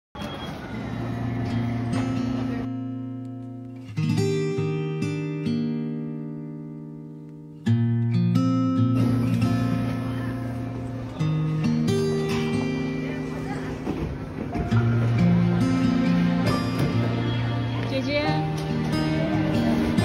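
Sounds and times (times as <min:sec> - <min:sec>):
acoustic guitar chords: 0:00.3 - 0:20.0.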